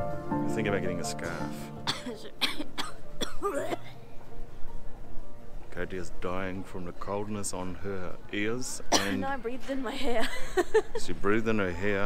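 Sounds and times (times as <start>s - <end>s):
woman coughing: 1.9s - 4.0s, 8.9s - 9.4s.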